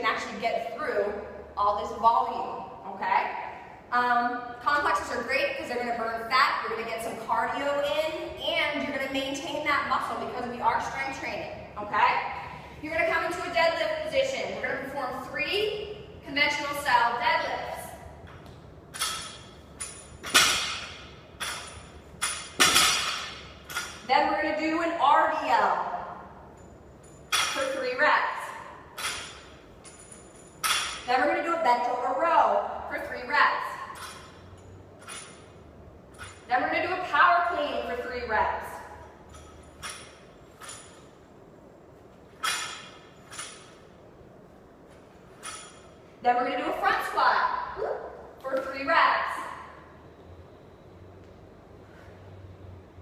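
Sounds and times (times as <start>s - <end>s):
barbell clinking: 18.2s - 24.7s, 25.3s - 31.6s, 33.6s - 37.0s, 39.0s - 41.3s, 42.3s - 44.0s, 45.1s - 46.1s.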